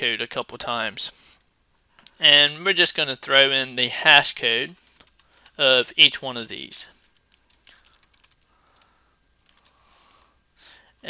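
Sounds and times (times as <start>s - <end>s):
faint keyboard typing: 4.4s - 5.7s, 6.3s - 10.4s.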